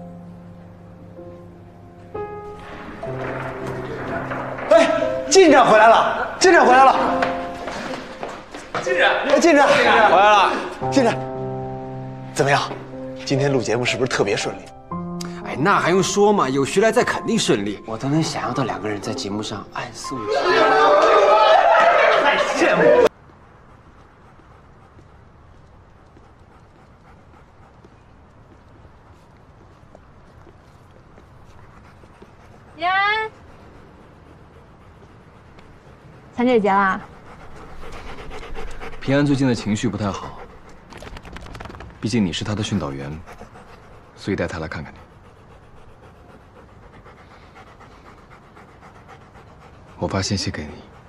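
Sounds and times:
footsteps on pavement: 0:06.8 - 0:10.8, 0:23.1 - 0:36.4
dog panting: 0:21.8 - 0:51.0.

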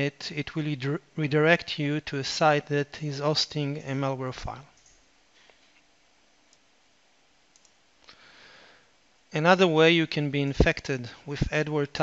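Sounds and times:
faint short clicks: 0:07.5 - 0:07.8.

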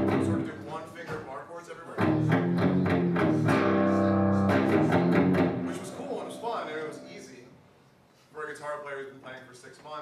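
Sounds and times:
electric guitar chords: 0:00.0 - 0:00.5, 0:02.0 - 0:07.3.

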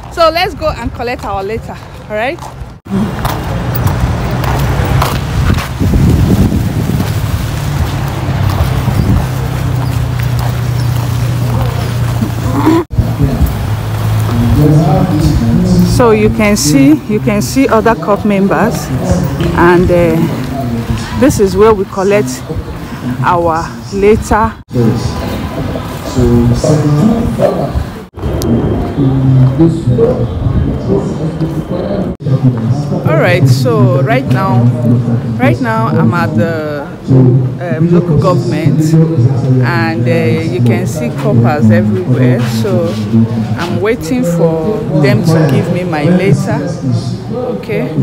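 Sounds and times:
wind buffeting microphone: 0:03.8 - 0:11.1, 0:25.2 - 0:31.4
indistinct voices: 0:07.5 - 0:48.0.

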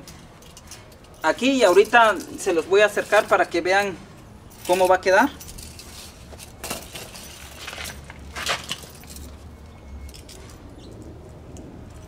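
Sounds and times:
small metal pieces clinking: 0:04.5 - 0:10.6.

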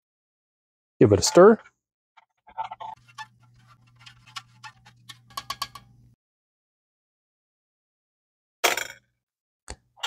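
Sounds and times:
spoon stirring in metal cup: 0:02.7 - 0:06.0.

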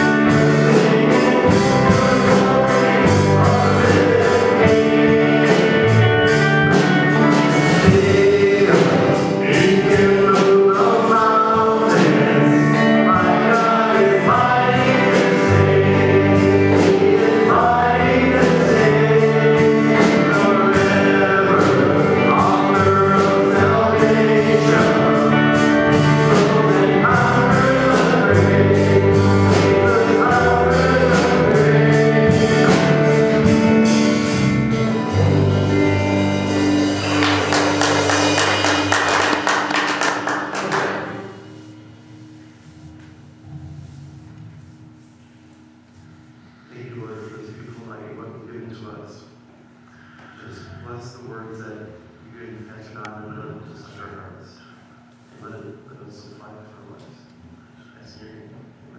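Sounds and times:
drums and cymbals: 0:00.0 - 0:13.6
voices singing a melody: 0:00.0 - 0:39.0
live rock band playing: 0:00.0 - 0:42.1
bass guitar: 0:00.0 - 0:44.8
drum and cymbal hits: 0:24.6 - 0:41.6.

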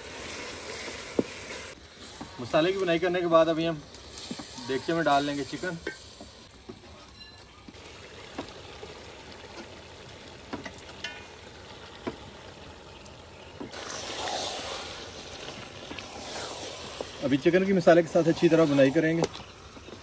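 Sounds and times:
masala sizzling in a pot: 0:00.0 - 0:20.0.

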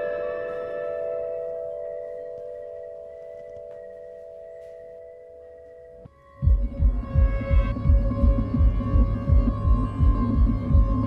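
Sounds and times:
sustained ringing drone: 0:00.0 - 0:11.0.

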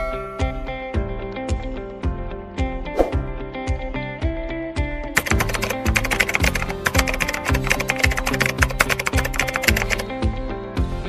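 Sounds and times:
rapid keyboard typing: 0:05.2 - 0:10.1.

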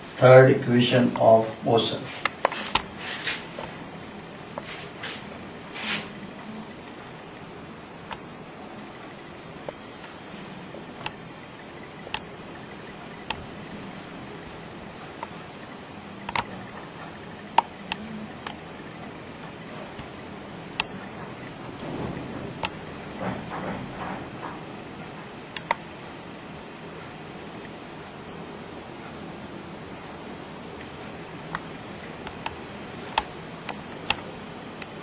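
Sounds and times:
crickets trilling: 0:00.0 - 0:35.0
brief hiss: 0:04.6 - 0:06.2.

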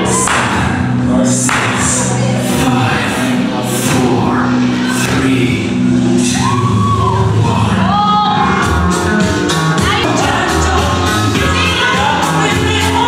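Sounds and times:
sustained music chords: 0:00.0 - 0:13.0
person singing: 0:09.9 - 0:13.0.

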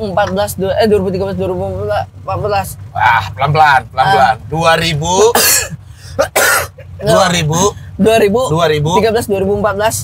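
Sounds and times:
man coughing: 0:05.2 - 0:07.1.

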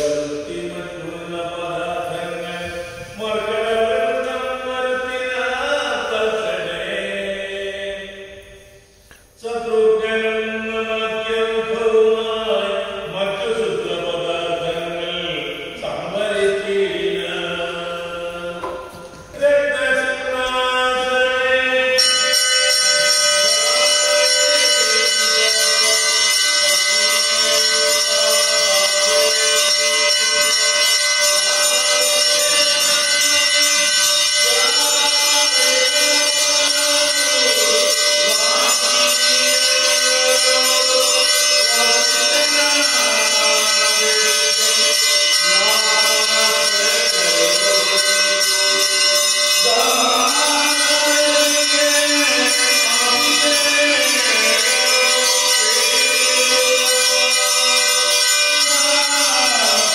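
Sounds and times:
continuous high ringing: 0:00.0 - 0:59.9
devotional chanting voices: 0:00.0 - 0:59.9.

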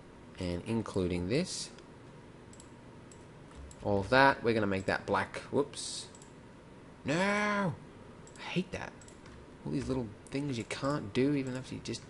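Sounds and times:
computer mouse clicks: 0:02.5 - 0:03.9, 0:06.1 - 0:06.4, 0:09.0 - 0:11.6.

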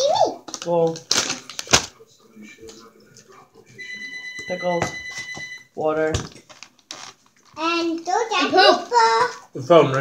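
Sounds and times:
chip bag crinkling: 0:00.5 - 0:01.9, 0:06.4 - 0:07.6.

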